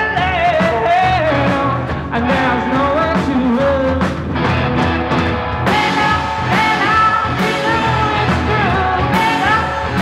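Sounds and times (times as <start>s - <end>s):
person singing: 0.0s - 4.2s, 5.7s - 10.0s
live rock band playing: 0.0s - 10.0s.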